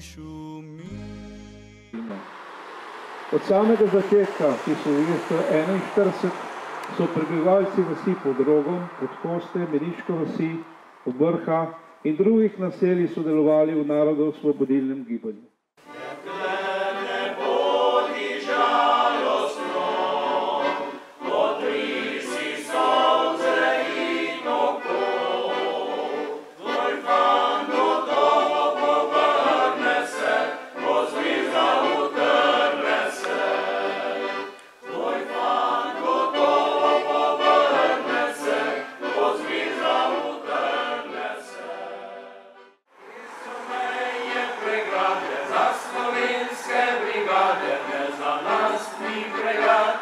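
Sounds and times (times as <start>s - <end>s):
male choir singing in harmony: 2.2s - 10.4s, 15.8s - 50.0s.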